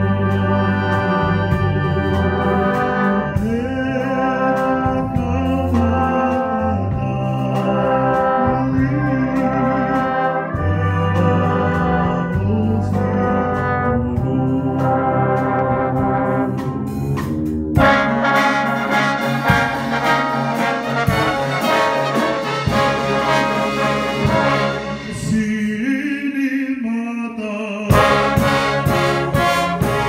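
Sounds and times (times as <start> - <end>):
brass band playing held chords: 0.0 - 25.6, 27.9 - 30.0.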